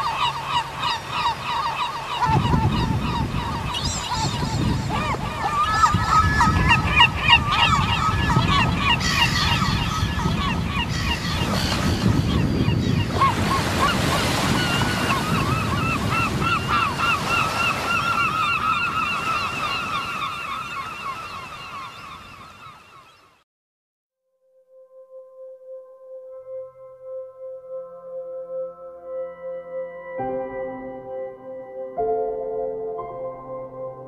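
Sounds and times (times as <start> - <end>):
gulls calling: 0.0 - 23.4.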